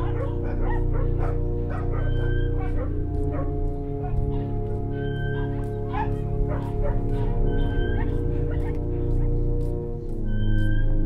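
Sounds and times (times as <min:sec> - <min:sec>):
dogs barking: 0:00.0 - 0:10.0
piano chords: 0:00.0 - 0:11.0.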